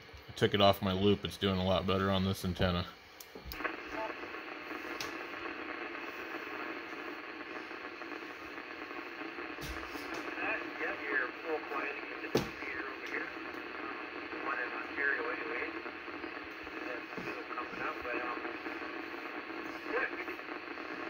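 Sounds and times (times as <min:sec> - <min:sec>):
radio static hissing: 0:00.0 - 0:21.0
sharp pops: 0:03.2 - 0:15.0
faint garbled voice on radio: 0:03.6 - 0:21.0.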